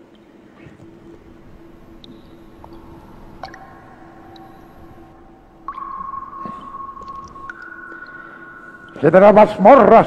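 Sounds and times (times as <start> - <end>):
steady synthetic tones: 0.3 - 10.0.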